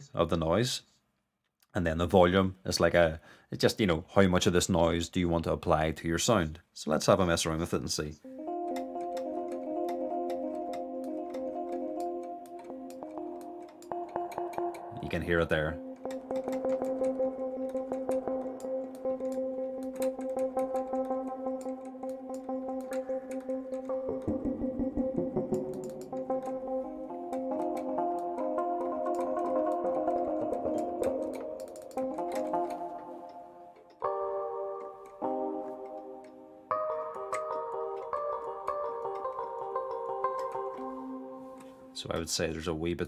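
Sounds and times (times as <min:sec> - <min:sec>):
electric piano chords: 0:08.3 - 0:42.0.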